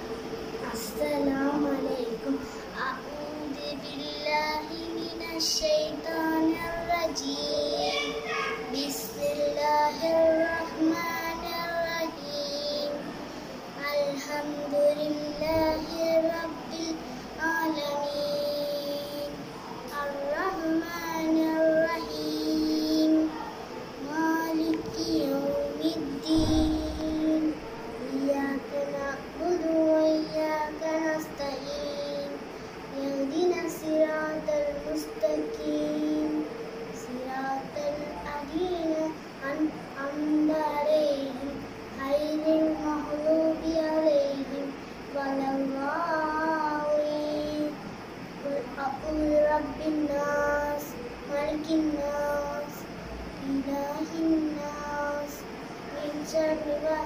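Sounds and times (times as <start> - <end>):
faint steady hum: 0.0 - 57.0
girl chanting recitation: 0.6 - 57.0.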